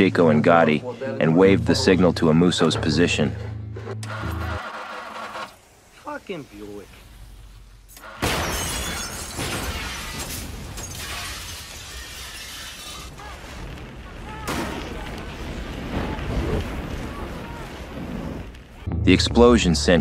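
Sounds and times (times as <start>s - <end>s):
debris falling: 8.1s - 18.9s
glass shattering: 8.2s - 13.4s.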